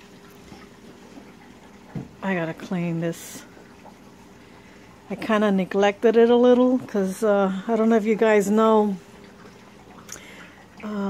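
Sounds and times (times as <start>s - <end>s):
faint steady hum: 0.0s - 11.0s
water trickling: 0.0s - 11.0s.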